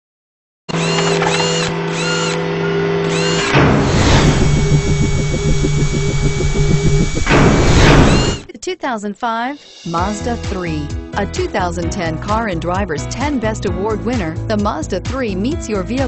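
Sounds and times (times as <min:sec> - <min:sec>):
electronic hum: 0:00.7 - 0:08.5
machine-like whirring pulse: 0:00.7 - 0:08.5
whoosh: 0:03.4 - 0:08.5.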